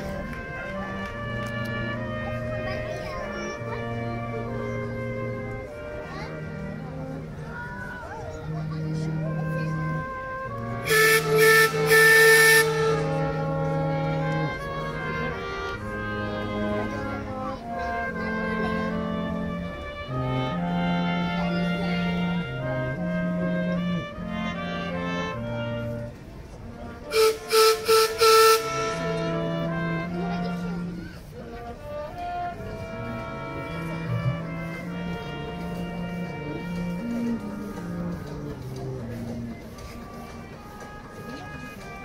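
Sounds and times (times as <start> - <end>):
orchestral music: 0.0 - 42.0
boat horn toots: 8.6 - 31.0, 31.6 - 42.0
boat whistle blasts: 10.9 - 13.1, 27.1 - 29.2.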